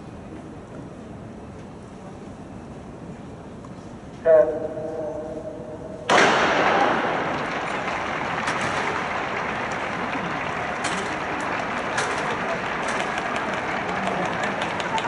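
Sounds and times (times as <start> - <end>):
stadium crowd noise: 4.2 - 15.0
starting gun crack: 6.1 - 13.7
hurdles being clipped: 6.1 - 15.0.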